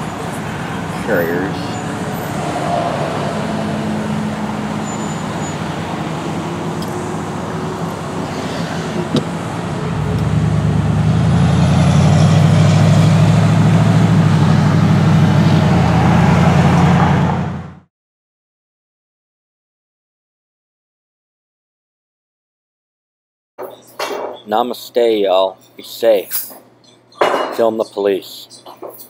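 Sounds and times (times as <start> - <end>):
road traffic noise: 0.0 - 17.9, 23.6 - 29.0
vehicle engine drone: 0.0 - 17.9.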